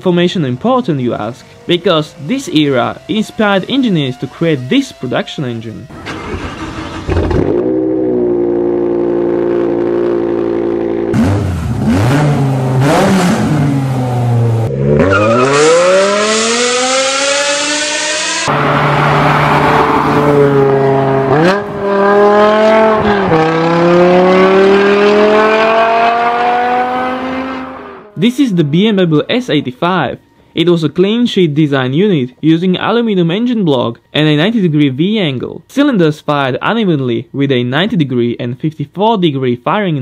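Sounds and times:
car engine idling: 0:00.0 - 0:14.7
engine full-throttle pulls: 0:00.3 - 0:28.2
engine revving: 0:01.1 - 0:28.2.

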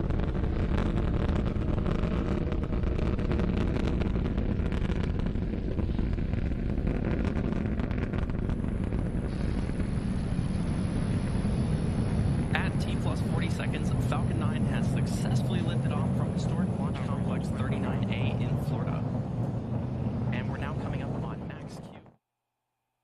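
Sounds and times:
rocket engines rumbling: 0:00.0 - 0:22.2.

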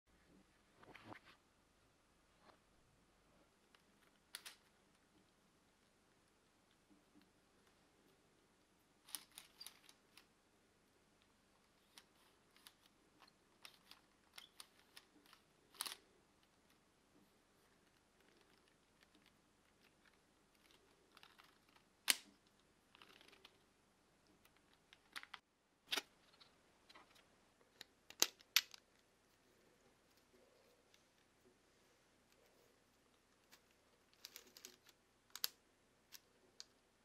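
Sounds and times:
plastic parts clicking and rattling: 0:09.0 - 0:10.3, 0:11.6 - 0:16.8, 0:17.6 - 0:23.6, 0:24.3 - 0:29.0, 0:32.3 - 0:36.8
plastic clicks: 0:33.4 - 0:36.8.

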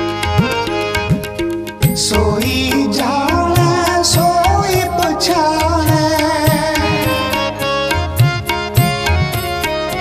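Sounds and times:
tabla drumming: 0:00.0 - 0:10.0
devotional singing melody: 0:01.8 - 0:08.6.

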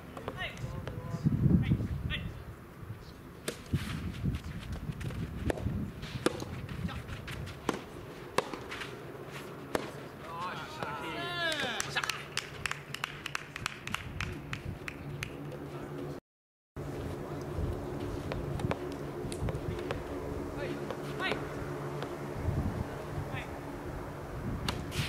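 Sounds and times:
racket striking tennis ball: 0:00.0 - 0:01.0, 0:03.4 - 0:10.2, 0:24.6 - 0:25.0
players calling out: 0:10.1 - 0:12.4
drawn-out shout: 0:10.2 - 0:12.3.

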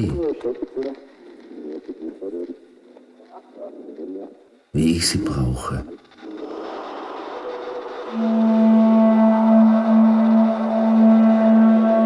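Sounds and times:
low electronic drone: 0:05.8 - 0:12.0.

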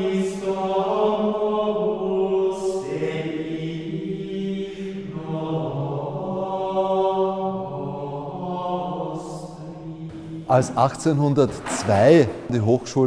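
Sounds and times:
men's choir chanting in unison: 0:00.0 - 0:12.5.

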